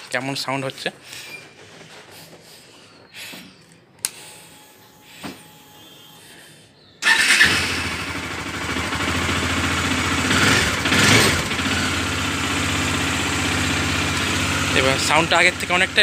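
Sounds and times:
motorcycle engine starting and idling: 0:07.0 - 0:16.0.

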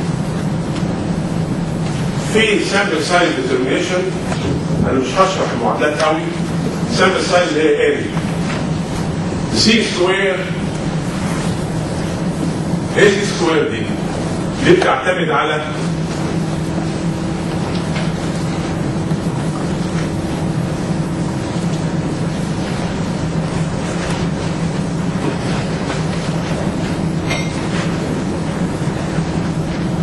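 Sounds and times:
constant hiss: 0:00.0 - 0:30.0
steady hum: 0:00.0 - 0:30.0.

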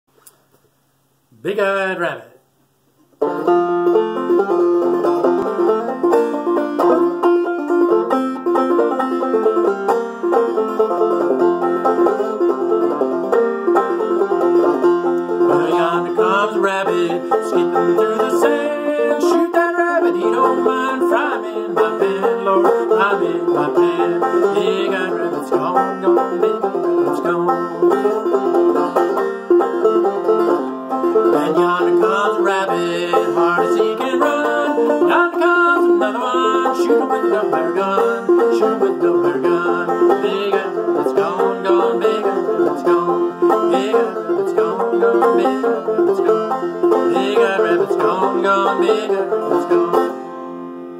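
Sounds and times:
banjo played clawhammer style: 0:03.0 - 0:50.9.

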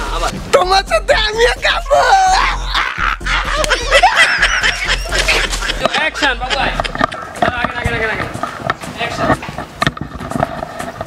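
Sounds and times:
men laughing loudly: 0:01.7 - 0:08.0.

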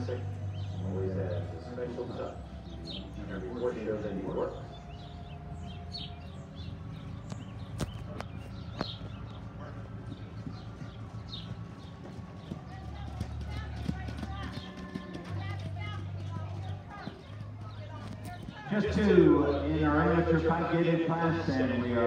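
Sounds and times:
horse hooves trotting on dirt: 0:04.6 - 0:19.2.

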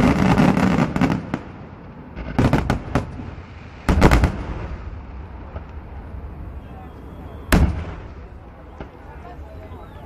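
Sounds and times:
fireworks bang echoing: 0:00.0 - 0:10.0.

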